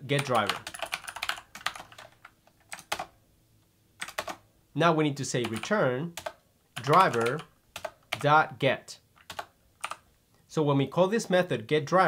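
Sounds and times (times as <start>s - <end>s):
computer keyboard keystrokes: 0.2s - 3.1s, 4.0s - 4.4s, 5.4s - 8.3s, 9.2s - 10.0s.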